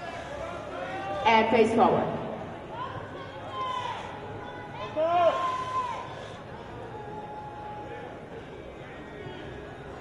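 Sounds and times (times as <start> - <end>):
crowd murmur in large hall: 0.0 - 10.0.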